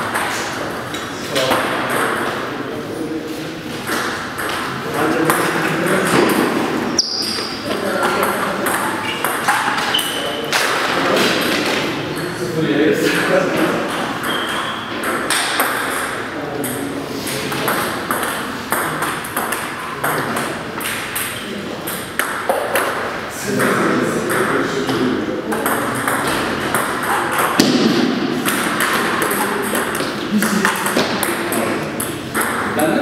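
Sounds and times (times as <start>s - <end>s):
table tennis balls clicking: 0.0s - 2.6s, 3.8s - 12.4s, 13.0s - 33.0s
people talking: 0.0s - 22.2s, 23.3s - 33.0s.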